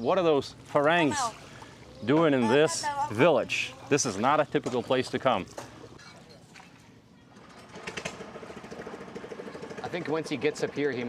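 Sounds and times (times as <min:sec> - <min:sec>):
small engine running: 0:07.4 - 0:11.0.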